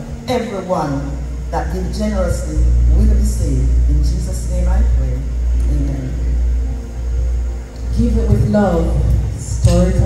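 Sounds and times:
bass and keyboard sustained chord: 0:00.0 - 0:10.0.

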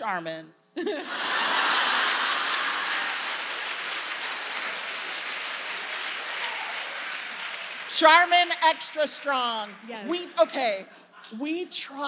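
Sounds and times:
audience laughing: 0:00.8 - 0:07.6
audience applauding: 0:01.1 - 0:10.3.

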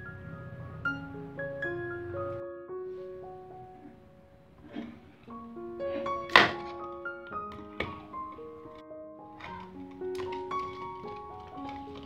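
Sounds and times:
keyboard music: 0:00.0 - 0:03.9.

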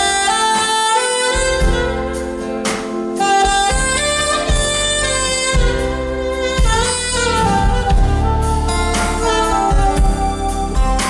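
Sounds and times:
backing band with bass and drums: 0:00.0 - 0:11.0
saxophone slow melody: 0:00.0 - 0:11.0.

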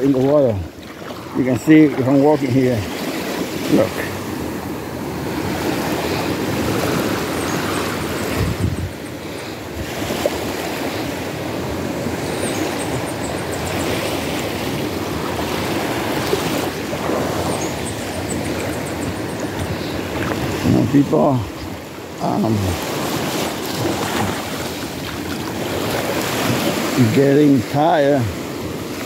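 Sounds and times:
waves washing onto shore: 0:00.0 - 0:29.0.

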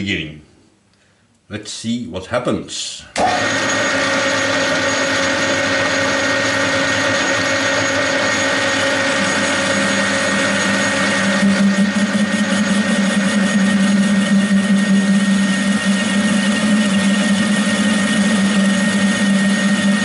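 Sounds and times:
metal lathe turning: 0:03.2 - 0:20.0.

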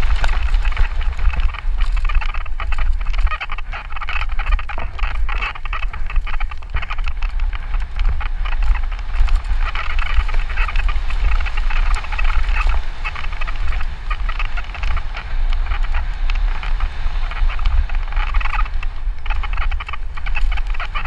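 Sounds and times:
bike rattling over bumps: 0:00.0 - 0:21.0
wind rumble on microphone: 0:00.0 - 0:21.0.

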